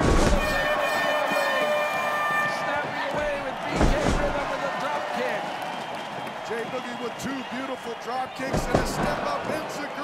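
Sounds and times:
body thudding on wrestling ring: 0.0s - 0.7s, 3.2s - 4.5s, 8.5s - 9.2s
arena crowd noise: 0.0s - 10.0s.

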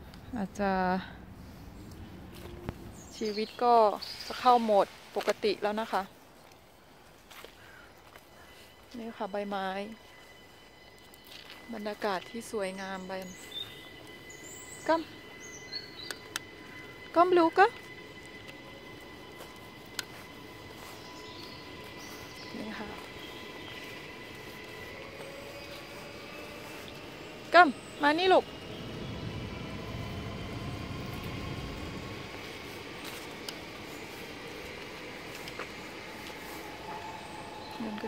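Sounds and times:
faint high bird chirps: 11.6s - 17.0s
passing vehicle rumble: 11.6s - 38.0s.

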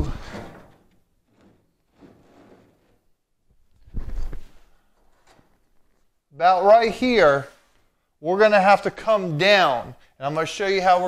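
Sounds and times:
knock with sliding scrape: 1.3s - 3.0s.

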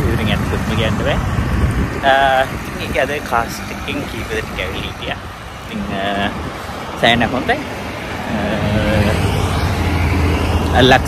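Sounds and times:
road traffic rumble: 0.0s - 11.0s
person speaking: 2.1s - 9.4s.

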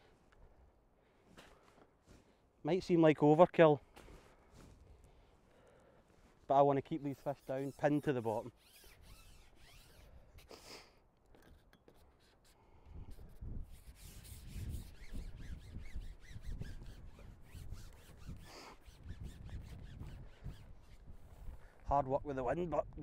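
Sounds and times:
wind buffeting microphone: 12.9s - 23.0s.

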